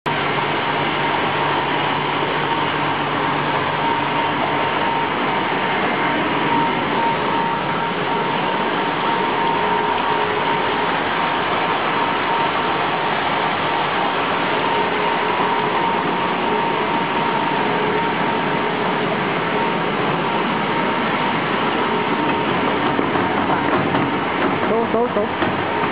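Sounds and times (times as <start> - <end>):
filling machine running with whine: 0.1 - 25.9.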